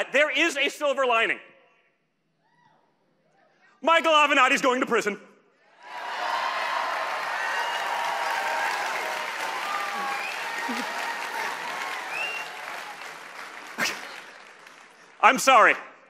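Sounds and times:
audience applauding and cheering: 5.7 - 15.7.

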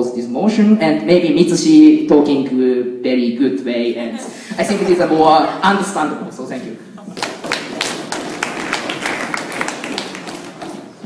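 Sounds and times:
small group clapping: 7.0 - 11.0.

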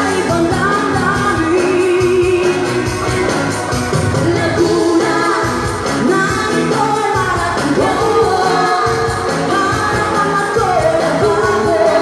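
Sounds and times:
music accompaniment: 0.0 - 12.0
vocal trio singing pop song: 0.0 - 12.0.

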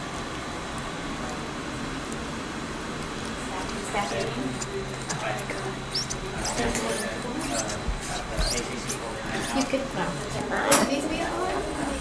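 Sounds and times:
quiet speech: 3.3 - 12.0
short high squeaks: 4.1 - 9.7.

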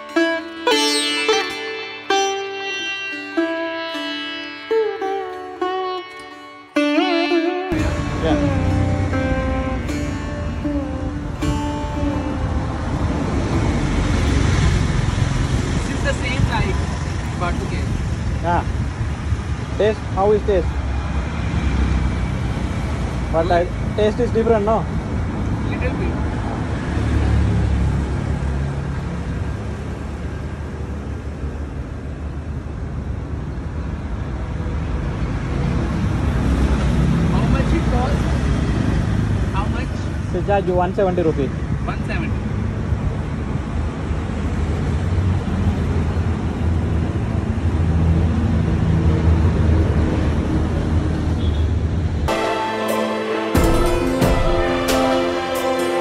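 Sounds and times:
plucked string melody: 0.0 - 14.7, 52.3 - 56.0
outdoor traffic roar: 0.0 - 56.0.

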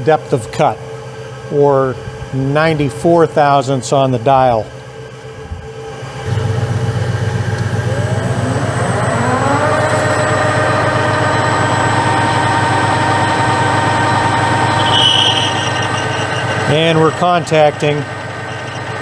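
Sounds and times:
lathe spindle whine rising: 4.6 - 19.0
lathe motor hum: 4.7 - 19.0.

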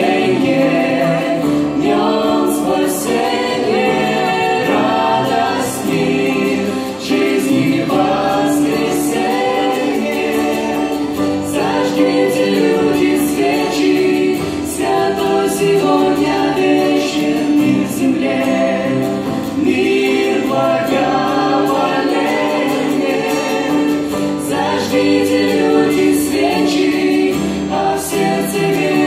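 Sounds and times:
acoustic guitar: 0.0 - 29.0
vocal group singing: 0.0 - 29.0.

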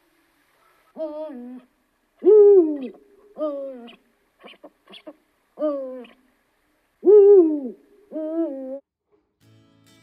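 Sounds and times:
owl hooting: 0.6 - 6.3, 7.0 - 8.8.

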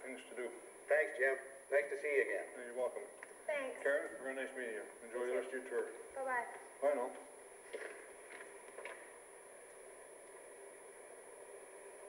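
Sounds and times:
tape hiss: 0.0 - 12.0.

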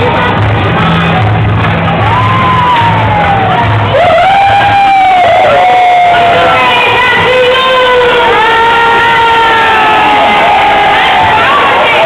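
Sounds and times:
dance music with bass beat: 0.0 - 8.5
crowd cheering and whooping: 1.1 - 12.0.

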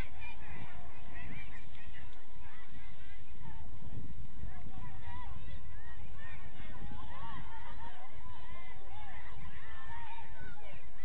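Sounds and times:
distant overlapping calls: 0.0 - 11.0
wind rumble on microphone: 0.0 - 11.0.

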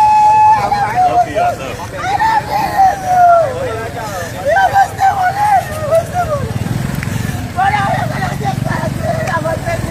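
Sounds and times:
motorbike engine idling: 0.0 - 9.9.

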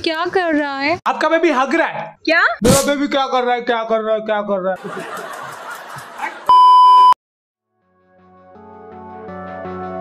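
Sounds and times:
electronic beep: 6.5 - 7.2.

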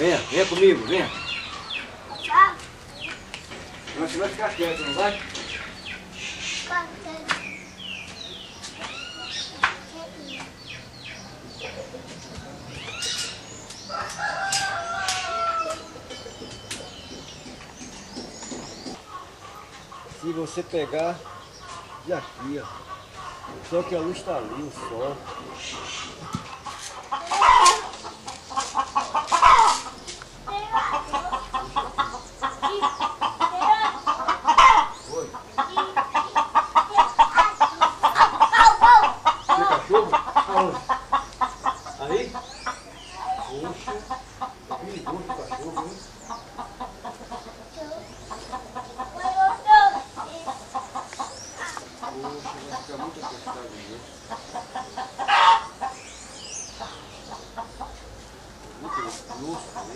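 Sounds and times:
chickens clucking: 0.0 - 59.9
chickens squawking: 0.0 - 59.9.

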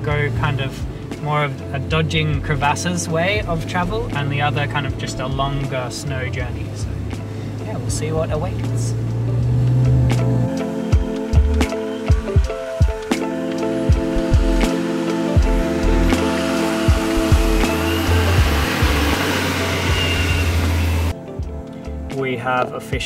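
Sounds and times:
sustained chords: 0.0 - 22.1
percussion hits: 7.9 - 21.6
hissing swell: 9.0 - 21.1.

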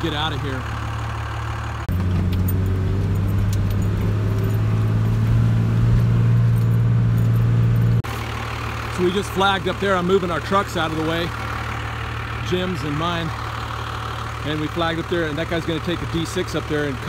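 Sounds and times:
truck engine droning: 0.0 - 17.0.

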